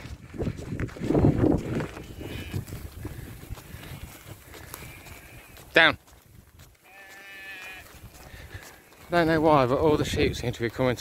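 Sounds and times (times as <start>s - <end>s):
sheep bleating: 2.0s - 2.8s, 4.6s - 5.8s, 6.8s - 8.0s.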